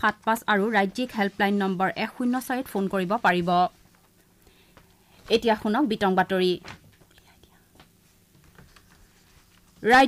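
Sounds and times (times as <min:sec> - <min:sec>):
newsreader speaking: 0:00.0 - 0:03.8, 0:05.3 - 0:06.6.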